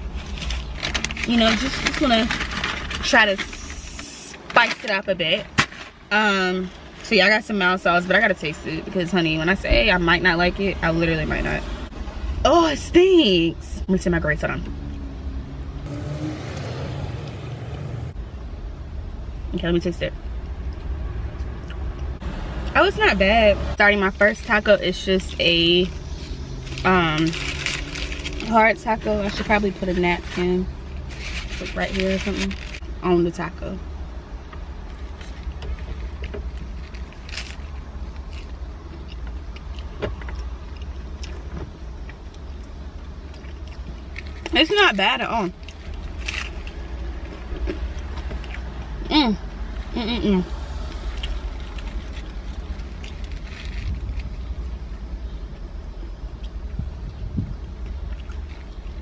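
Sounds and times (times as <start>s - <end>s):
paper wrapper crackling: 0.0s - 4.9s, 26.1s - 32.8s
car idling hum: 15.8s - 20.8s
chewing crunchy taco: 34.8s - 44.6s, 45.5s - 49.0s, 50.6s - 59.0s.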